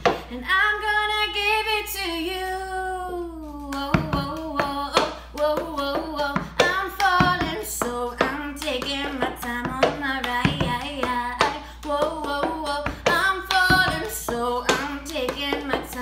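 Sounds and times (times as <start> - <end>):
woman singing pop melody: 0.0 - 16.0
hand claps and table slaps: 3.7 - 16.0.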